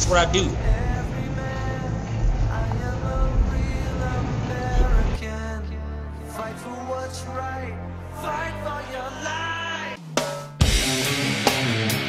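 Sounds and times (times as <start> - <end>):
background music with low beat: 0.0 - 6.5, 9.8 - 12.0.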